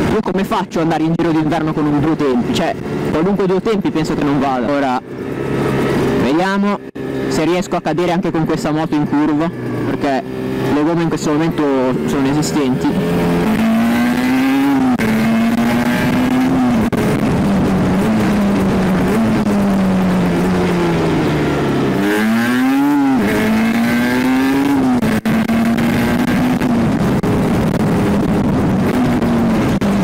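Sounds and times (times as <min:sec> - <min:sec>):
motorcycle engine revving: 0:00.0 - 0:30.0
wind noise: 0:11.5 - 0:30.0.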